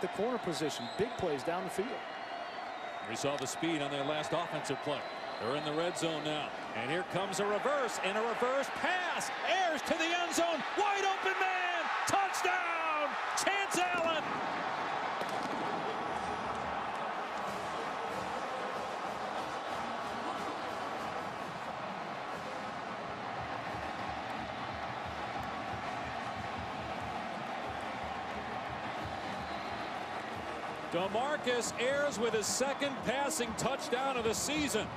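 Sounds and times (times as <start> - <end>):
stadium crowd cheering: 0.0 - 34.9.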